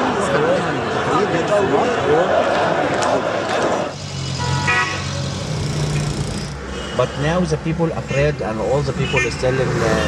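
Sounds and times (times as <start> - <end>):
crowd noise: 0.0 - 10.0
car engines running: 2.3 - 10.0
car horn toots: 4.4 - 5.2.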